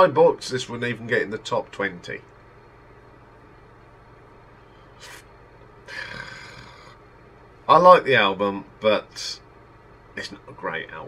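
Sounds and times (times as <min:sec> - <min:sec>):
low steady hum: 0:00.0 - 0:11.0
person sniffing: 0:04.7 - 0:05.3, 0:05.9 - 0:07.0
breathy huff: 0:05.9 - 0:07.0.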